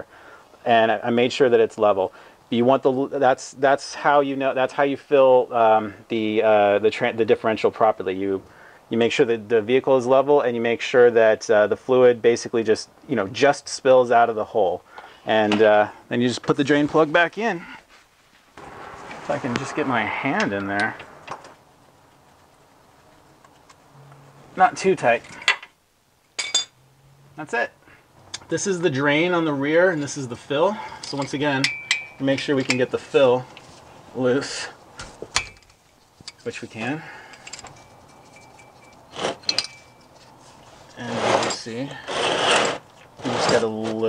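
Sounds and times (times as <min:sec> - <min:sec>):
metallic clicks and clinks: 0:37.3 - 0:40.3
faint thin metallic ring: 0:37.6 - 0:40.3.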